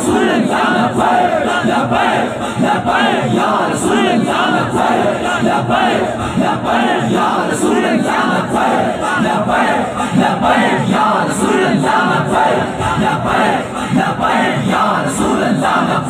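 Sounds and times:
crowd of men shouting slogans: 0:00.0 - 0:16.0.

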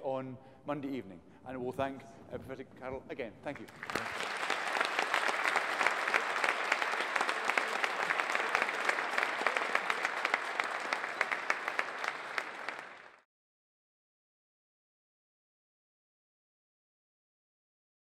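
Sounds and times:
audience applauding: 0:03.6 - 0:13.2.

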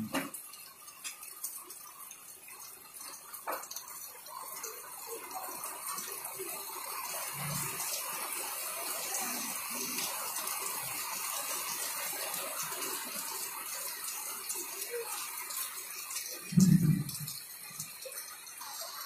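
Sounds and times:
heavy rain: 0:00.0 - 0:19.0.

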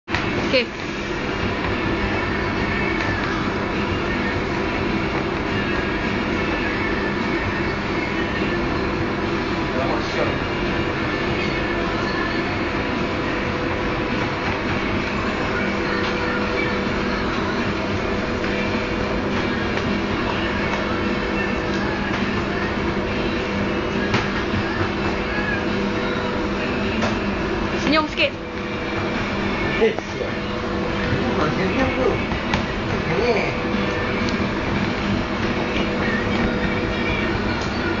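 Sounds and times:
kitchen machinery running: 0:00.1 - 0:38.0.

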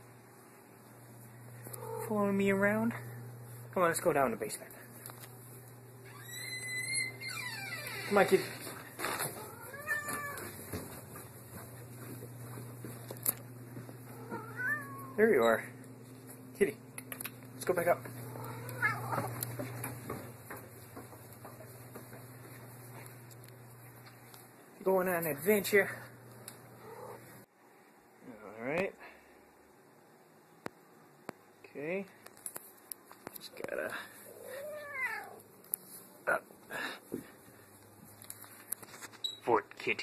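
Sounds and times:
steady low hum: 0:00.0 - 0:07.5, 0:08.2 - 0:34.4
footsteps: 0:07.8 - 0:14.7, 0:17.3 - 0:24.6
cat meowing: 0:09.4 - 0:10.6, 0:14.2 - 0:15.2, 0:18.3 - 0:19.4, 0:34.4 - 0:35.4.

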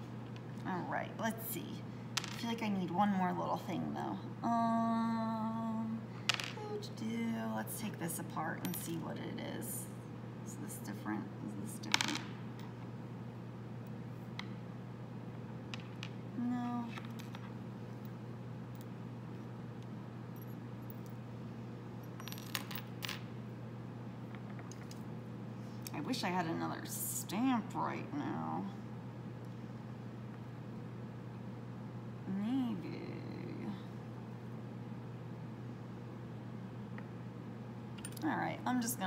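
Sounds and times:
steady low hum: 0:00.0 - 0:39.0
woman humming: 0:04.4 - 0:06.0, 0:32.3 - 0:34.0.

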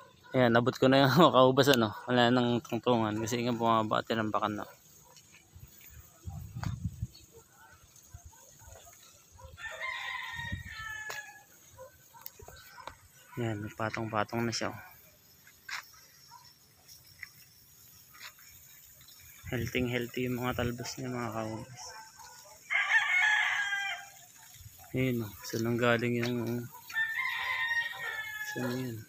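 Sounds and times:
rooster crowing: 0:09.3 - 0:12.6, 0:22.5 - 0:24.3, 0:26.8 - 0:29.0.

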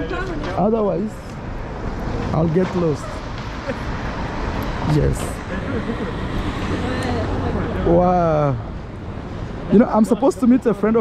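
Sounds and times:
road traffic driving past: 0:00.0 - 0:11.0.

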